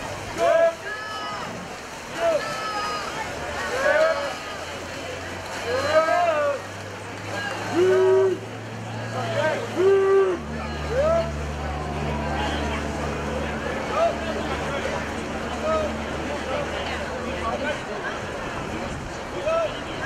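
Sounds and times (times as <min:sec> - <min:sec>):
spectators yelling encouragement: 0:00.3 - 0:04.8, 0:05.5 - 0:12.9.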